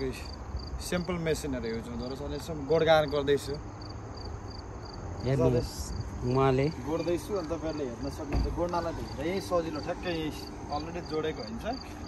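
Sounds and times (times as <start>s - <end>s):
insects chirping: 0.0s - 12.0s.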